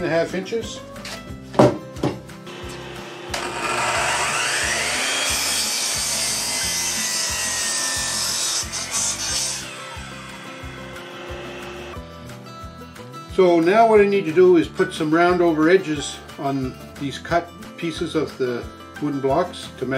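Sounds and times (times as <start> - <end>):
background music with steady beat: 0.0 - 3.5, 8.3 - 19.9
miter saw whining: 2.5 - 12.0
saw blade cutting wood post: 2.5 - 12.0.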